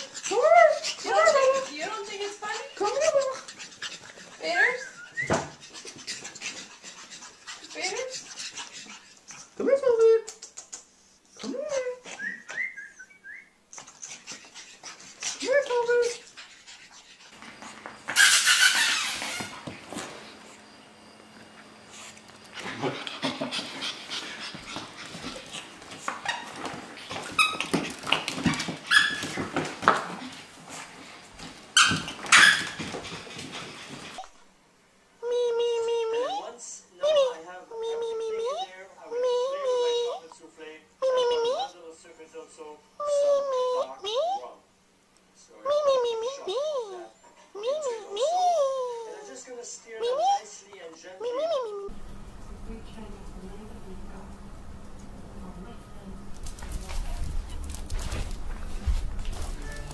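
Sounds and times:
dogs whining yips: 3.2s - 6.4s, 12.1s - 14.7s, 18.1s - 19.7s, 26.0s - 29.6s, 31.8s - 34.3s
dogs scuffling: 13.8s - 34.4s, 51.9s - 59.9s
puppy paws clicking on wooden floor: 17.3s - 20.5s, 21.2s - 34.3s, 51.9s - 59.9s.

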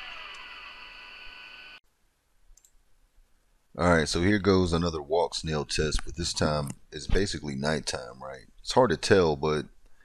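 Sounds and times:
high-pitched whine: 0.0s - 1.8s.

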